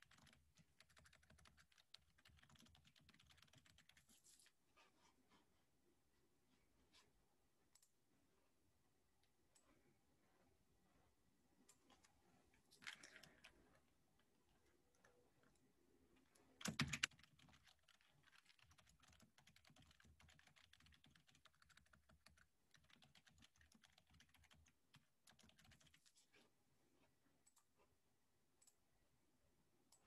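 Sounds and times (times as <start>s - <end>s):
typing on computer keyboard: 0.0s - 4.3s, 16.4s - 26.2s.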